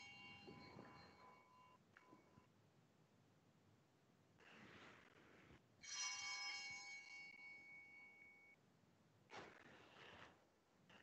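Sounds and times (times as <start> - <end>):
altar bell ringing: 0.0 - 1.8, 5.8 - 8.5.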